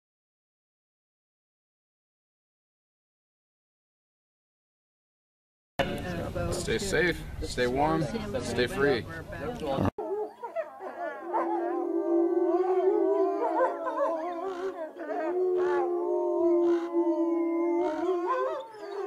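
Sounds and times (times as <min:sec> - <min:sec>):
wolves howling in chorus: 0:09.6 - 0:19.0.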